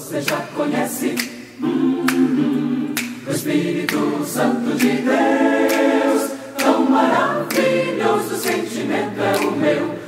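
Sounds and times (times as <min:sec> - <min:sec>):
mixed choir singing a cappella: 0:00.0 - 0:10.0.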